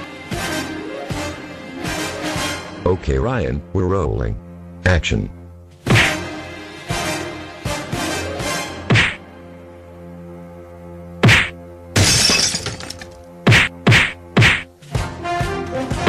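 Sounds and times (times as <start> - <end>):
dramatic soundtrack music: 0.0 - 12.0, 13.0 - 16.0
punch whacks: 5.8 - 6.3, 8.9 - 9.2, 11.2 - 11.6, 13.5 - 14.7.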